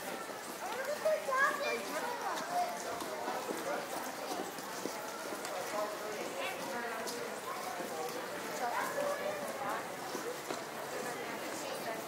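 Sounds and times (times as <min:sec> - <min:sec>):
people talking in a crowd: 0:00.0 - 0:12.0
child's high-pitched voice: 0:00.6 - 0:02.8, 0:08.7 - 0:09.6.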